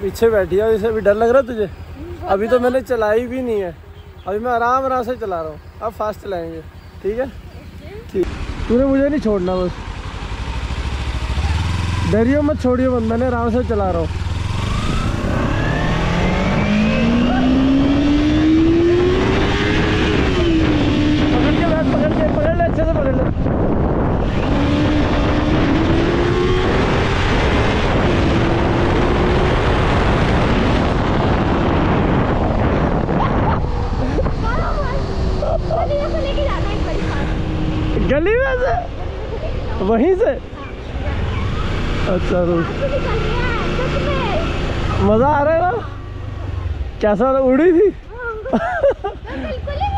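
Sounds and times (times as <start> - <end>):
motorcycle engine accelerating: 0.0 - 49.9
person talking: 2.0 - 3.5
wind rush on microphone: 16.8 - 45.8.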